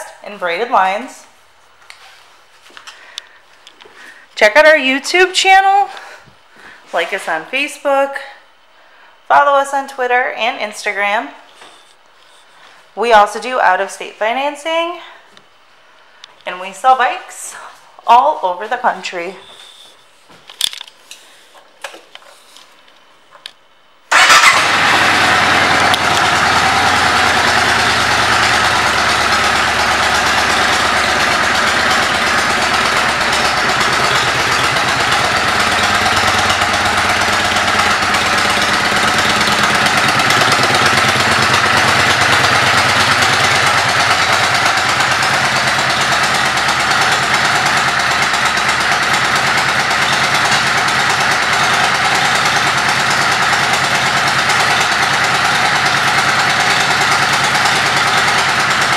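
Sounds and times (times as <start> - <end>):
motorcycle engine starting and idling: 24.1 - 58.9.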